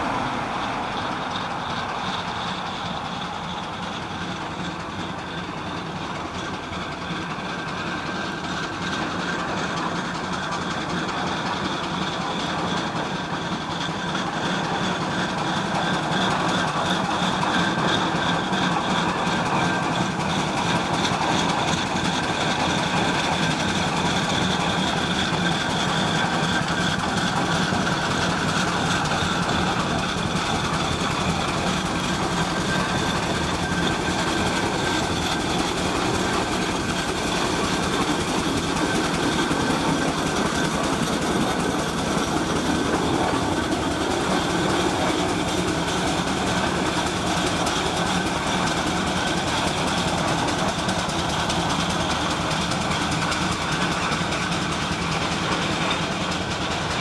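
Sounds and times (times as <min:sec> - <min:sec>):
steam engine running: 0:00.0 - 0:57.0.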